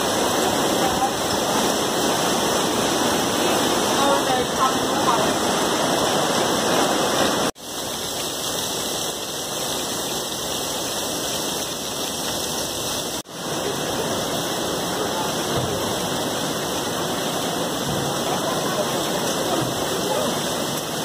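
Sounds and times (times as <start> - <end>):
rainwater rushing down stairs: 0.0 - 21.0.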